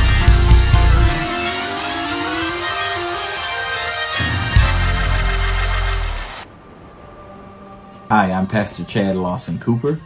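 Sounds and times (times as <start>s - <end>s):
sustained chords: 0.0s - 9.2s.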